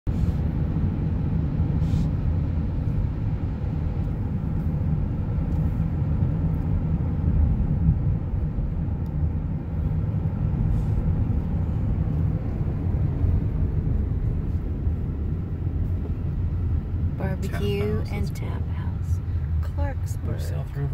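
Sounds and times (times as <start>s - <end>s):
van engine and tyre noise: 0.1s - 20.9s.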